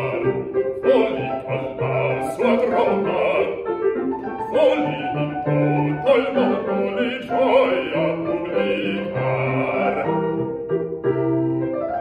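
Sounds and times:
bass voice singing: 0:00.0 - 0:03.6, 0:04.4 - 0:10.4
grand piano accompaniment: 0:00.0 - 0:12.0.

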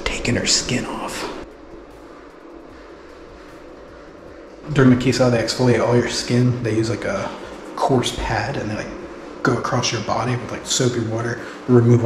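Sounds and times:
faint hum: 0:00.0 - 0:12.0
steady hiss: 0:00.0 - 0:12.0.

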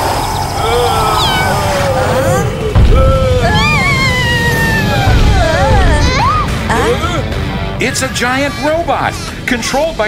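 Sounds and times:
low ground rumble: 0:00.0 - 0:07.8
cartoon cat-like yowling meow: 0:00.6 - 0:02.5.

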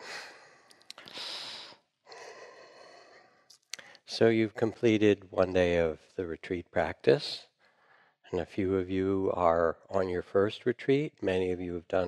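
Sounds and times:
speech: 0:04.1 - 0:07.5, 0:08.3 - 0:12.0.

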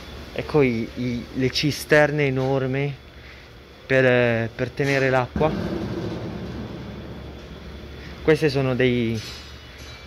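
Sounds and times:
store interior low hum: 0:00.0 - 0:10.0.

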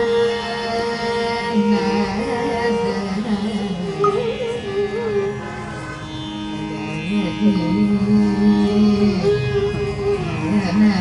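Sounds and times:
tanpura drone: 0:00.0 - 0:11.0
sliding melodic line: 0:04.0 - 0:04.6.

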